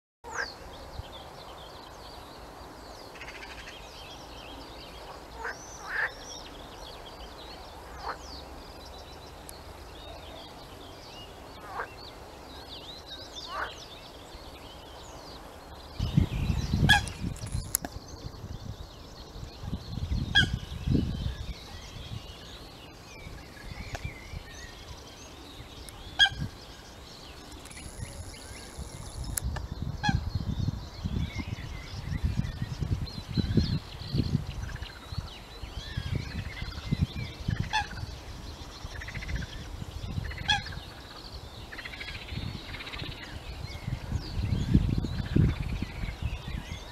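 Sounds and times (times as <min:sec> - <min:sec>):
sharp loud bird calls: 0:25.8 - 0:30.5.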